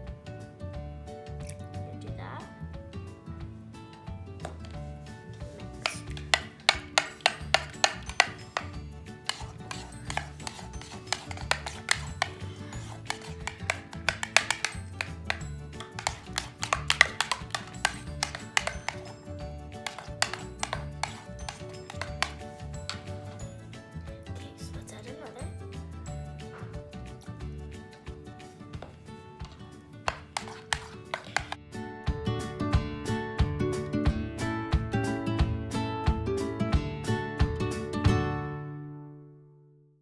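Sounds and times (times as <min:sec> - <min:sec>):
background music: 0:00.0 - 0:39.2
metal spoon knocking mixing bowl: 0:05.8 - 0:23.6, 0:30.1 - 0:31.6.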